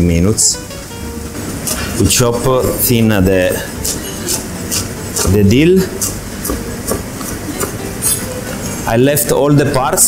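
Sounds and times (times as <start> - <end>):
knife chopping on plastic board: 6.0 - 7.0.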